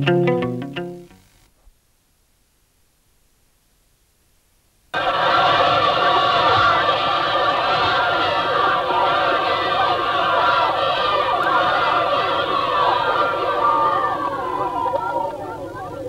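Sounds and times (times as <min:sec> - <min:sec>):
children shouting and cheering: 0:05.0 - 0:16.0.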